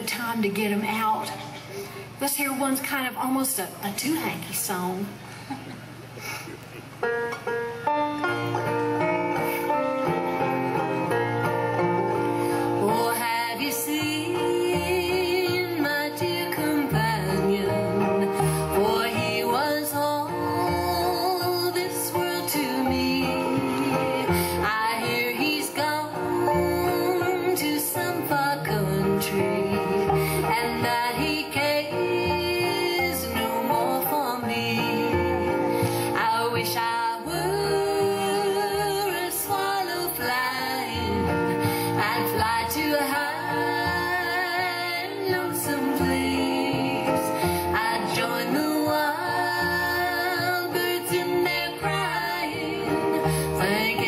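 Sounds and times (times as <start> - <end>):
plucked guitar: 5.6 - 54.0
mandolin notes: 6.7 - 54.0
women singing: 12.7 - 54.0.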